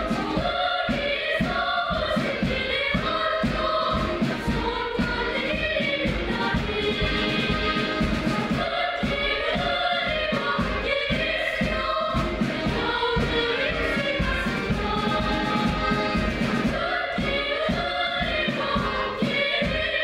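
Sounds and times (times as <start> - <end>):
accordion: 0.0 - 20.0
girls choir singing: 0.0 - 20.0
steady beat: 0.0 - 20.0.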